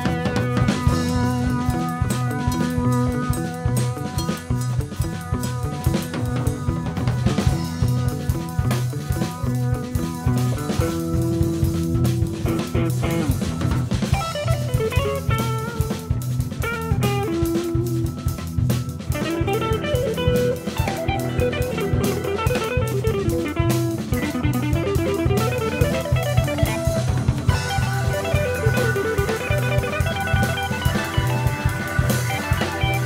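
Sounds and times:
drum kit: 0.0 - 33.0
guitar lines: 0.0 - 33.0
pulsing bass line: 0.0 - 33.0.

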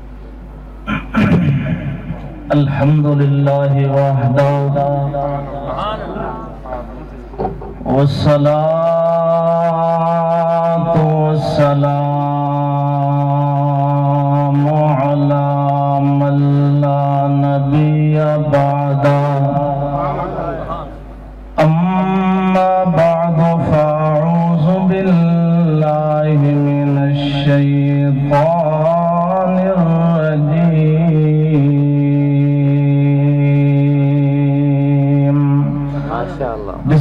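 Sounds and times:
man chanting long notes: 0.9 - 7.1, 7.8 - 21.0, 21.6 - 37.0.

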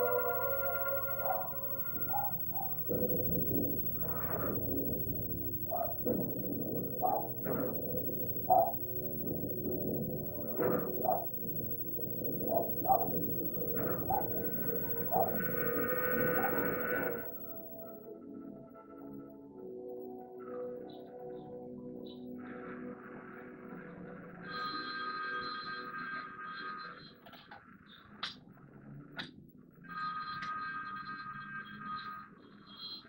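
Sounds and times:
warped cry-like wails: 0.0 - 17.5.

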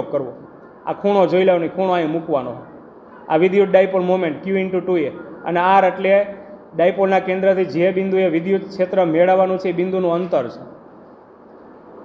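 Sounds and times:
man lecturing: 0.0 - 2.7, 3.3 - 10.8.

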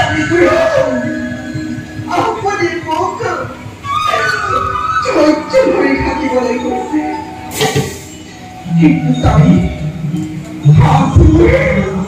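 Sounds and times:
amplified voice singing dialogue: 10.7 - 12.0.

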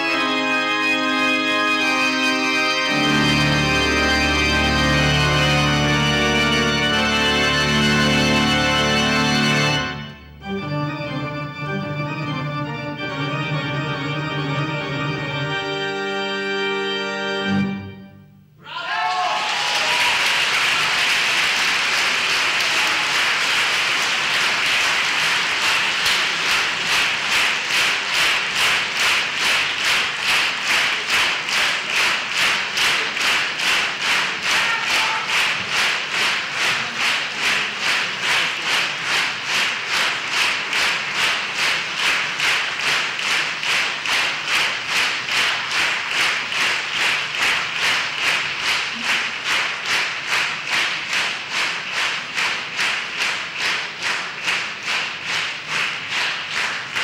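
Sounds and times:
rhythmic clapping in unison: 0.0 - 17.8, 19.4 - 57.0
audience applauding: 18.7 - 57.0.

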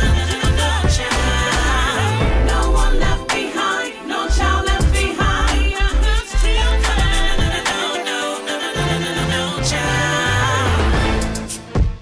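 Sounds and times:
bass line: 0.0 - 3.4, 4.3 - 7.7, 8.8 - 12.0
person singing: 0.0 - 11.7.

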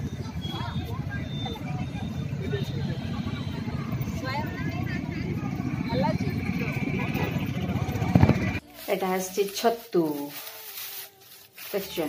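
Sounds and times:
distant traffic rumble: 0.0 - 8.6
faint voices of people: 0.0 - 9.0.

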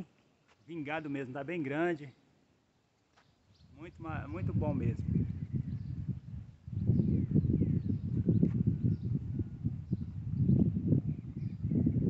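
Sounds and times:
wind buffeting microphone: 3.5 - 12.0
faint bird chirps: 5.4 - 12.0.

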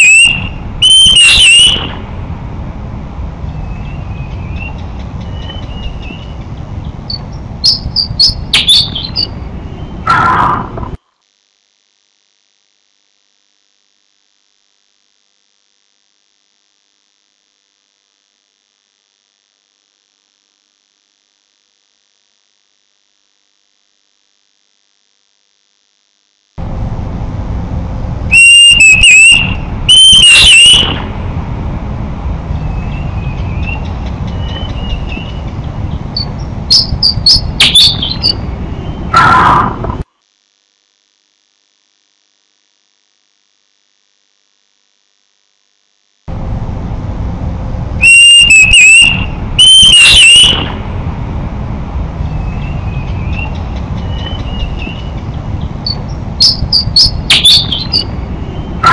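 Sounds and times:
bird chirps: 0.0 - 2.1, 3.5 - 10.4, 28.3 - 31.2, 32.6 - 39.4, 48.0 - 50.8, 52.3 - 58.9
loud whistled bird notes: 0.0 - 2.1, 3.5 - 6.4, 7.1 - 10.4, 28.3 - 31.2, 32.6 - 35.6, 36.2 - 39.4, 48.0 - 50.8, 52.3 - 55.2, 55.8 - 58.9
background noise and hum: 0.0 - 58.9.

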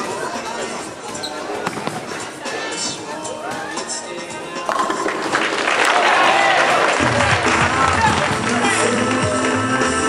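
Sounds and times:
background music: 0.0 - 10.0
hubbub of bowling alley: 0.0 - 10.0.

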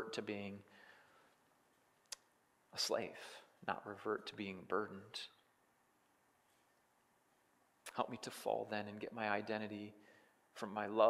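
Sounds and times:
man's voice: 0.0 - 0.7, 2.8 - 5.4, 7.9 - 10.0, 10.6 - 11.0.

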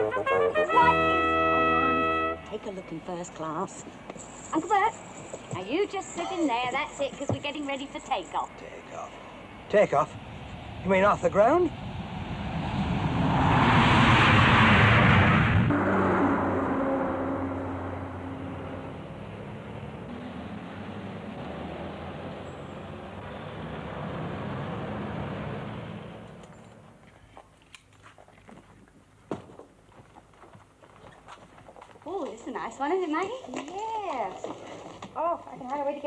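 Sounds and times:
jet engines at takeoff power: 9.2 - 16.0.

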